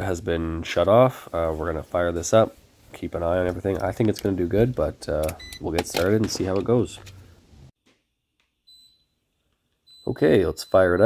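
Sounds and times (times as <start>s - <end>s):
faint electronic beep: 8.7s - 9.2s, 9.8s - 11.0s.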